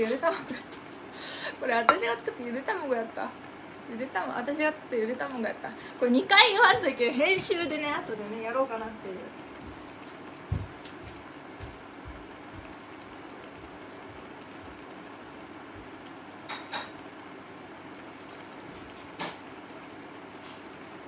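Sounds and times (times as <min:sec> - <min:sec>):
stew simmering hum and hiss: 0:00.0 - 0:21.0.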